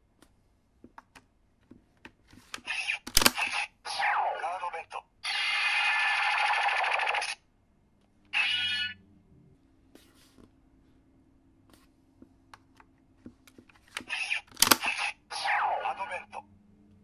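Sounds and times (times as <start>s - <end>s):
recorded voice call: 2.7s - 5.2s, 14.1s - 16.5s.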